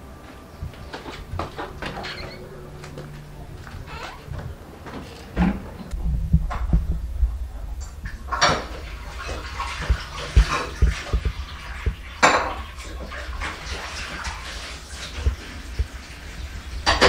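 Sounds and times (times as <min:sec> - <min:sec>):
water splashing in a sink: 0:08.0 - 0:17.0.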